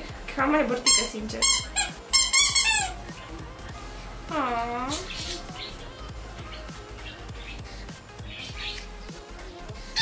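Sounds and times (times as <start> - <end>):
squeaky dog toy squeaking: 0.8 - 3.0.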